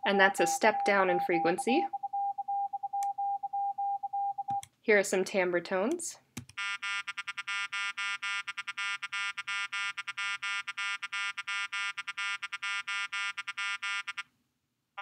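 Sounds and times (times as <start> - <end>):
duller tone sequence: 0.4 - 4.6
synthetic tones beeping: 0.4 - 4.6.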